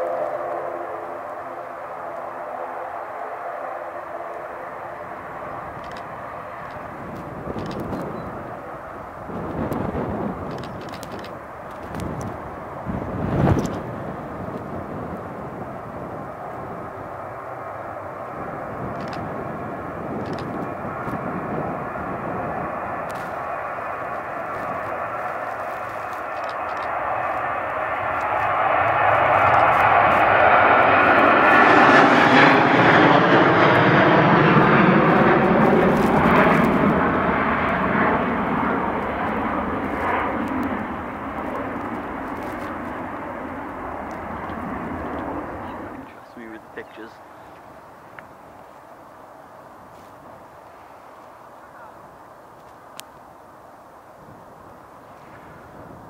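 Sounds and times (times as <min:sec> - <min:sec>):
jet taking off overhead: 0:00.0 - 0:56.0.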